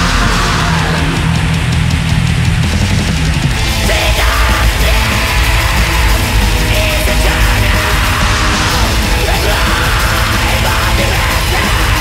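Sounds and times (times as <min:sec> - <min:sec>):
harsh screamed vocal: 0:00.0 - 0:01.9, 0:03.8 - 0:12.0
distorted guitars and drums: 0:00.0 - 0:12.0.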